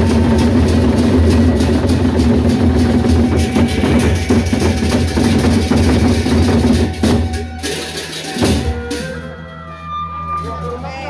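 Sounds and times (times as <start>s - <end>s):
barrel drums beaten with sticks: 0.0s - 9.2s
metal percussion: 0.0s - 11.0s.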